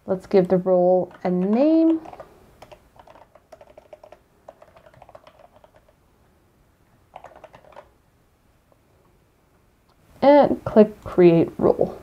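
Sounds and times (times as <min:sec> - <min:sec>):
faint keyboard typing: 0:00.1 - 0:06.0, 0:07.1 - 0:08.0.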